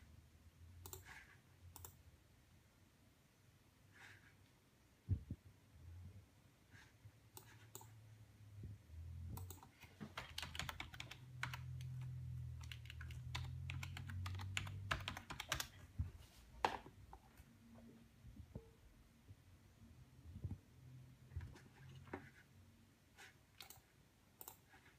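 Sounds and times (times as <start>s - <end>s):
computer keyboard typing: 0.8s - 1.2s, 1.8s - 2.0s, 9.4s - 15.9s, 23.6s - 24.7s.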